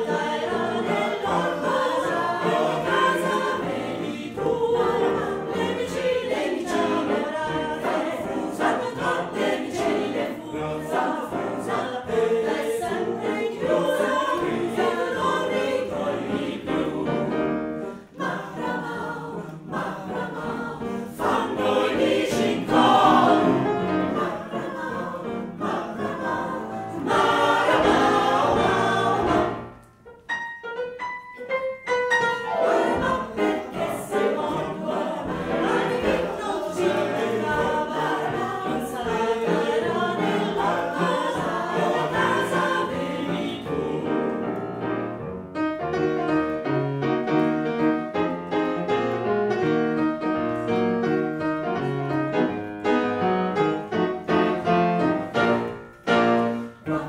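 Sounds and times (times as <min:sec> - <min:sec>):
mixed choir singing: 0:00.0 - 0:29.9, 0:32.3 - 0:45.1, 0:46.5 - 0:57.0.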